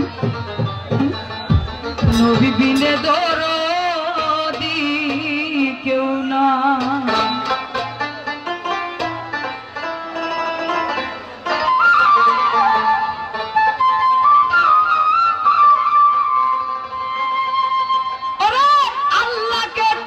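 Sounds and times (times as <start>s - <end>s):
melody line of long notes: 0.0s - 19.1s
folk ensemble playing instruments: 0.0s - 20.0s.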